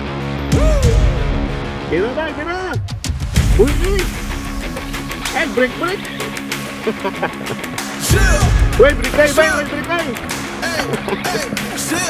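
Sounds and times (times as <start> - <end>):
upbeat song with singing voice: 5.4 - 12.0.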